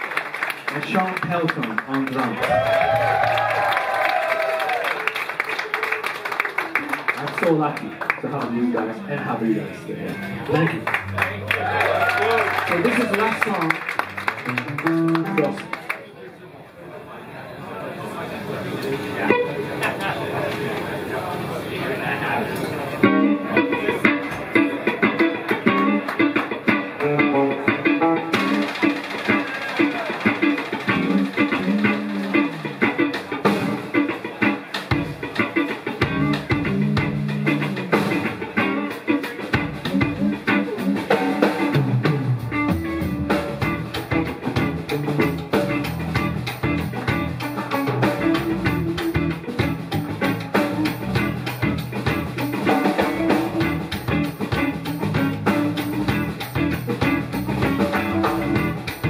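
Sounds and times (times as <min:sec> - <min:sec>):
electric guitars: 0:00.0 - 0:16.0, 0:18.6 - 0:59.0
drum kit: 0:10.1 - 0:15.8, 0:23.0 - 0:59.0
electric bass: 0:14.0 - 0:15.7, 0:30.8 - 0:59.0.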